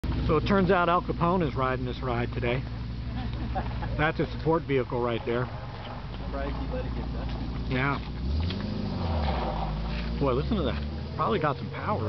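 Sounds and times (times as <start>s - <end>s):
car engine running low: 0.0s - 12.0s.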